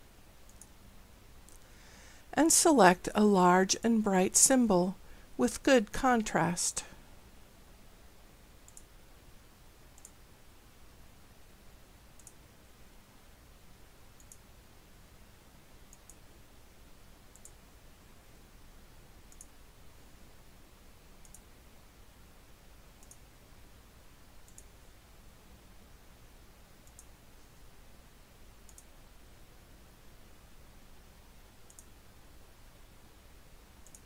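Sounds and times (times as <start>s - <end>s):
faint steady hiss: 0.0s - 34.0s
computer mouse clicking: 0.5s - 0.8s, 8.7s - 8.9s, 10.0s - 10.2s, 12.2s - 12.4s, 14.2s - 14.4s, 15.9s - 16.2s, 17.3s - 17.6s, 19.3s - 19.6s, 21.2s - 21.5s, 23.0s - 23.2s, 24.4s - 24.7s, 26.8s - 27.1s, 28.6s - 28.9s, 31.6s - 31.9s.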